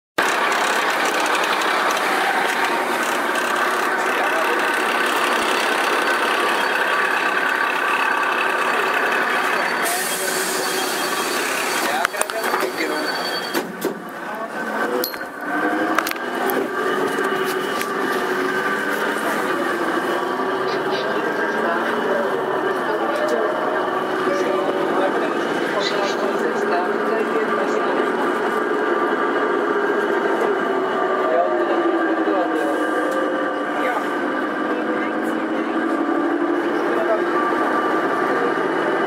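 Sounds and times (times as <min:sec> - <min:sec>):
bus engine hum: 0:00.2 - 0:39.0
voices: 0:00.6 - 0:39.0.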